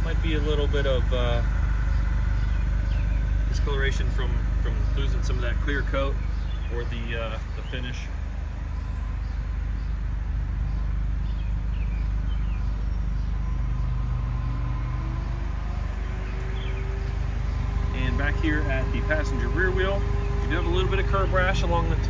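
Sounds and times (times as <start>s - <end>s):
vehicle engine humming: 0.0s - 22.0s.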